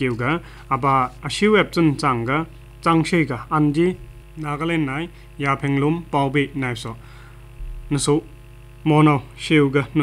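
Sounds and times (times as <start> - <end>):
newsreader speaking: 0.0 - 7.0
low mains hum: 0.0 - 10.0.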